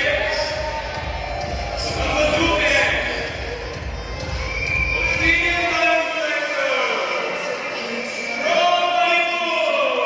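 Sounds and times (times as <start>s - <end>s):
man speaking over loudspeakers: 0.0s - 10.0s.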